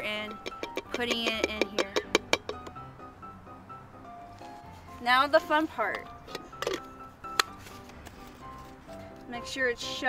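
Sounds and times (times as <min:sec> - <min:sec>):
background music: 0:00.0 - 0:10.0
plastic lid clicking: 0:00.4 - 0:02.8, 0:05.9 - 0:07.6.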